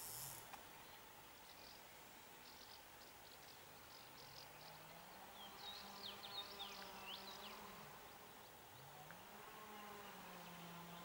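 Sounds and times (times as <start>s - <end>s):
insect buzzing: 0.0s - 0.5s.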